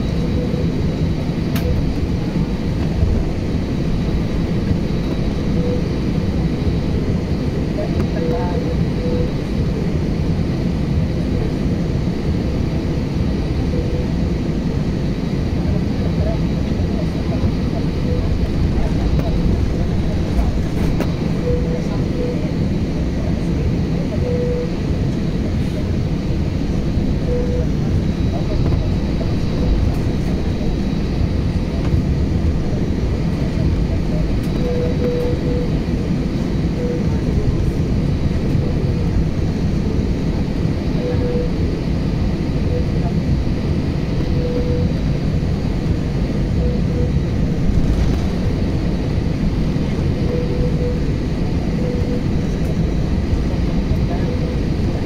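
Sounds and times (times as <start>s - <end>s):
aircraft rolling on pavement: 0.0s - 55.0s
jet engines idling: 0.0s - 55.0s.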